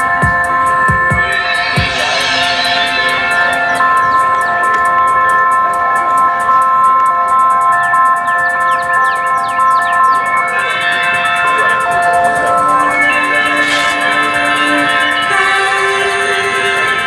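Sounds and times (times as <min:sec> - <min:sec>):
rapid high ticking: 0:00.0 - 0:17.0
sustained synth chord: 0:00.0 - 0:17.0.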